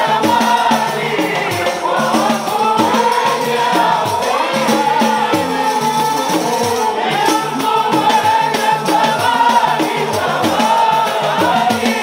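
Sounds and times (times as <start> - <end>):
men singing a devotional chant: 0.0 - 12.0
steady repeating beat: 0.0 - 12.0.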